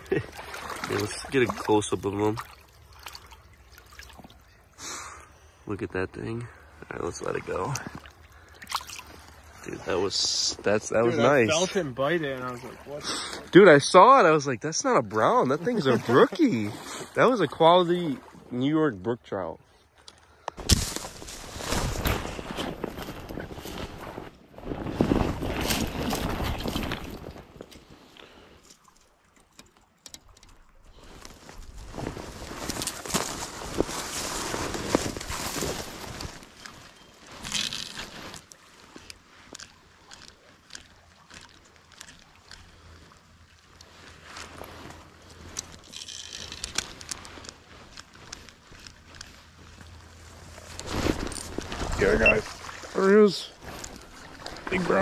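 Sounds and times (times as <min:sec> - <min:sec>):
creek water: 0:00.0 - 0:55.0
footsteps crunching dry leaves: 0:20.7 - 0:24.0.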